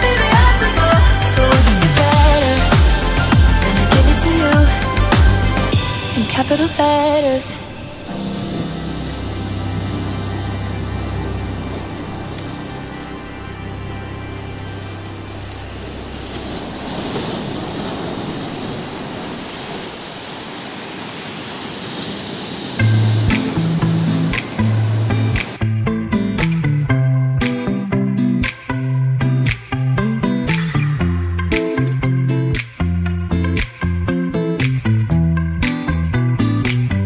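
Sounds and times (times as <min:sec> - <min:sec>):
plucked bass notes: 0:00.0 - 0:05.8, 0:22.8 - 0:37.0
background music: 0:00.0 - 0:17.4, 0:22.8 - 0:37.0
sea surf breaking on rocks: 0:01.5 - 0:25.6.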